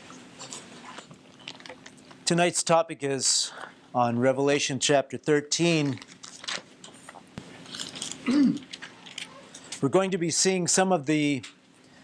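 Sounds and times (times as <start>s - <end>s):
pages rustling: 5.8s - 8.2s.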